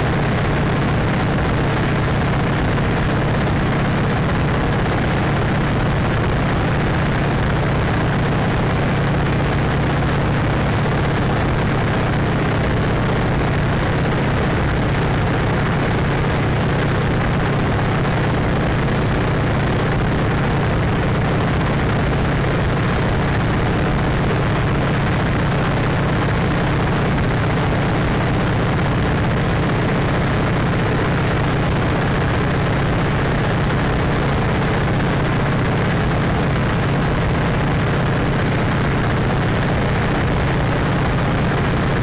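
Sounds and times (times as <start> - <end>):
propeller engine droning: 0.0 - 42.0.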